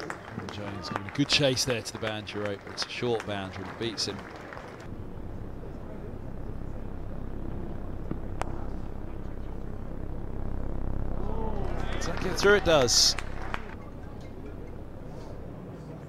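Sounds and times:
low background rumble: 0:04.8 - 0:16.0.

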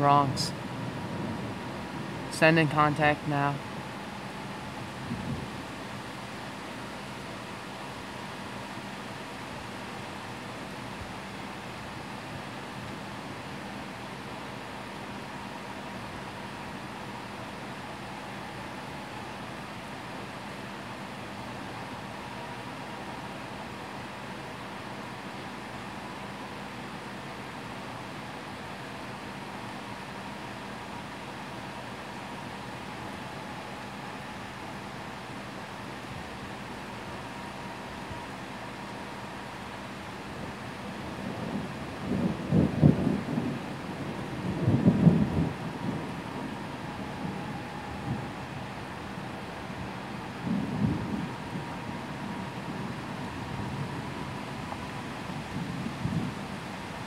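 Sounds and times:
heavy rain hiss: 0:00.0 - 0:57.0
thunder rumbling: 0:40.9 - 0:57.0.

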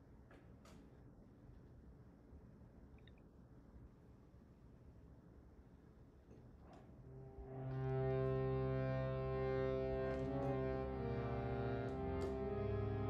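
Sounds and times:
harmonium drone chord: 0:07.1 - 0:13.0.

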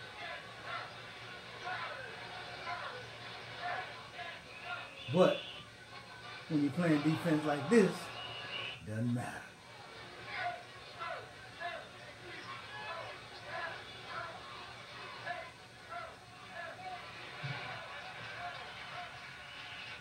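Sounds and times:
faint television speech: 0:00.0 - 0:20.0.

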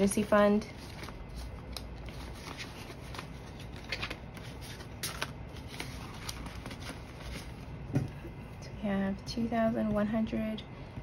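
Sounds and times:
banknotes rustling and crinkling: 0:00.0 - 0:07.7.

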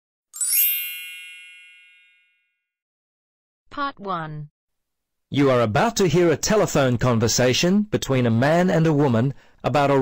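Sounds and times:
bright chime ringing: 0:00.4 - 0:02.5.

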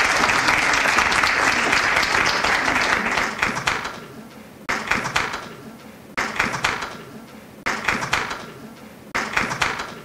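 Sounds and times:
sharp claps: 0:00.0 - 0:04.1, 0:04.7 - 0:05.6, 0:06.2 - 0:10.0.

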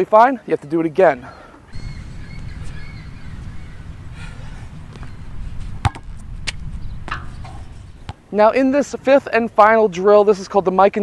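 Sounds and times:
sneakers landing on asphalt: 0:04.9 - 0:07.4
basketball striking backboard: 0:05.8 - 0:06.1.

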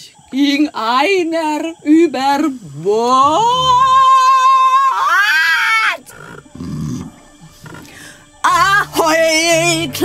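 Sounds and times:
low rough growl: 0:06.1 - 0:08.2.

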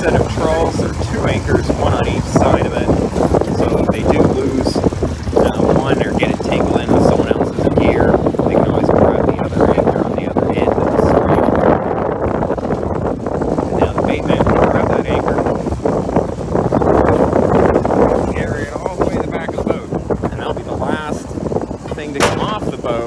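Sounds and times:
boat engine and hauler drone: 0:00.0 - 0:23.0
water washing along hull: 0:00.0 - 0:23.0.

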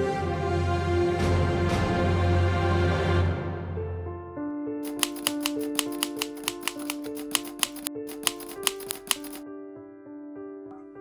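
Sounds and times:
soft background music: 0:00.0 - 0:11.0
typewriter key strikes: 0:04.8 - 0:09.4.

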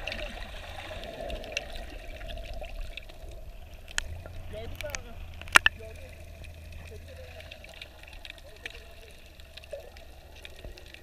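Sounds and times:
muffled underwater hum: 0:00.0 - 0:11.0.

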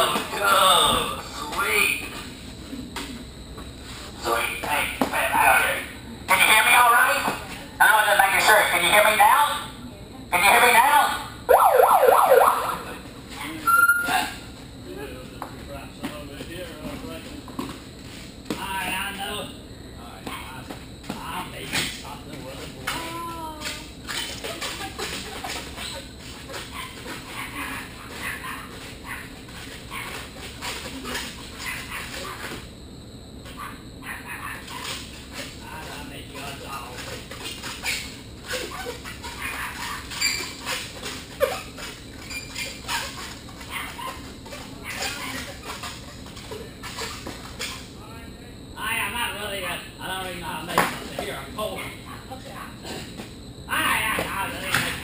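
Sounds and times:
siren-like whooping: 0:11.5 - 0:13.0.

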